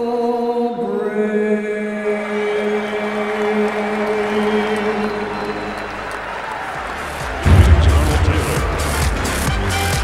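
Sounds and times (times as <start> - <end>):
crowd applauding and cheering: 2.2 - 10.0.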